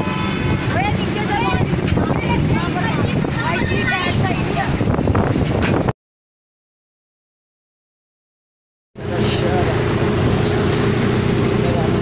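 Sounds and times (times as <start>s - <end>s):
vehicle engine humming: 9.0s - 12.0s.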